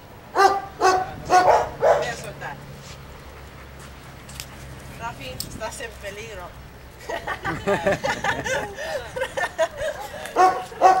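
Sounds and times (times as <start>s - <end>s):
dog barking: 0.4s - 2.2s, 10.4s - 11.0s.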